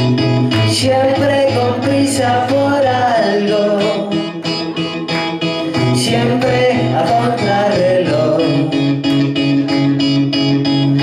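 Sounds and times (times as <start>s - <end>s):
guitar strummed: 0.0s - 11.0s.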